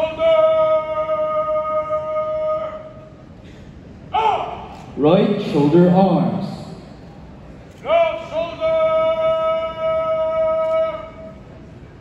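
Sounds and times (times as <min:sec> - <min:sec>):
man shouting drill command: 0:04.2 - 0:06.5, 0:07.8 - 0:11.3.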